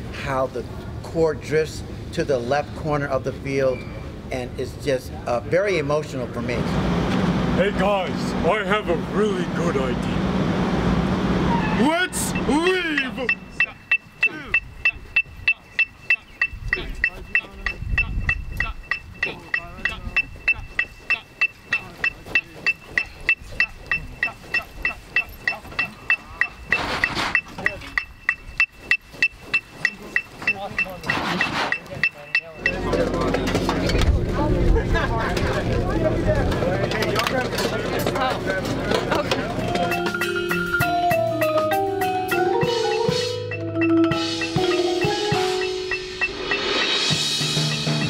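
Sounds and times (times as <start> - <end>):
outdoor practice noise: 0.0 - 48.0
faint voices: 11.7 - 26.7
electronic metronome beeping: 12.2 - 33.6, 39.7 - 48.0
loud music: 39.8 - 48.0.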